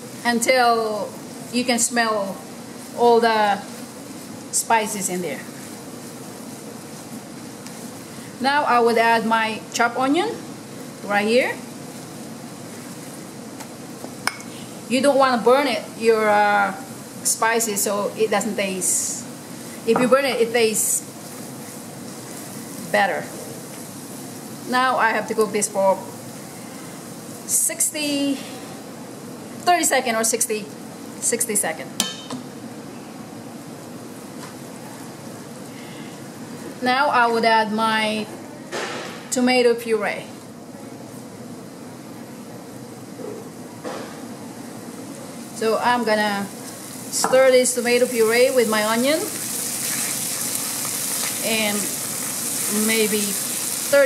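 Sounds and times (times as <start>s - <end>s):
food sizzling in a pan: 0.0s - 38.0s, 40.6s - 54.0s
cooking hiss: 0.0s - 54.0s
spatula stirring in a pan: 48.0s - 54.0s.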